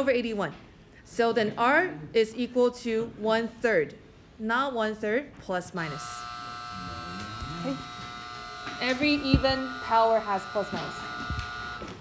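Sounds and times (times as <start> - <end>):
electrical buzz: 5.8 - 12.0
person saying okay: 6.8 - 7.9.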